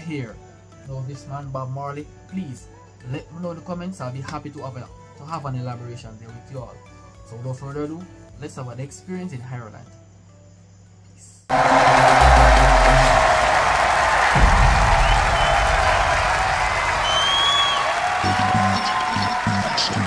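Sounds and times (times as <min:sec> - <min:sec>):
crowd cheering and applauding: 0:11.5 - 0:20.0
whistle: 0:11.5 - 0:20.0
deep booming music hits: 0:11.6 - 0:17.8.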